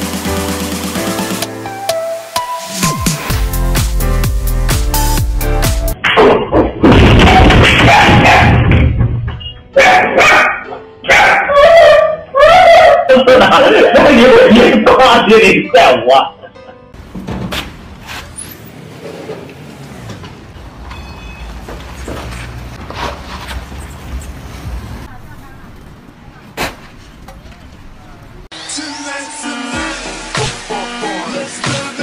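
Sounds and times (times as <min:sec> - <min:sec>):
dog barking: 0:09.8 - 0:13.1
road traffic rumble: 0:17.0 - 0:28.5.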